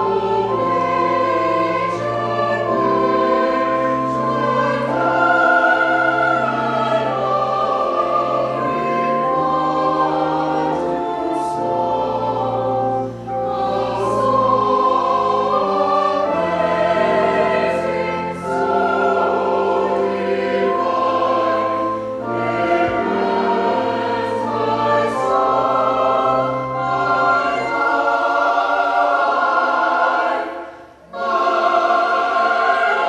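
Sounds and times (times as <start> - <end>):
choir breaths: 0.0 - 33.0
church choir singing: 0.0 - 33.0.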